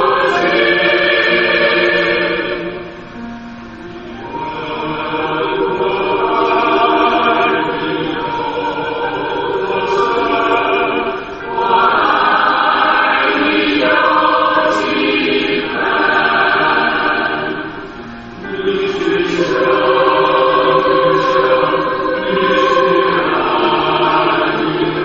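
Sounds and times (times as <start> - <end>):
choir singing slow song: 0.0 - 25.0.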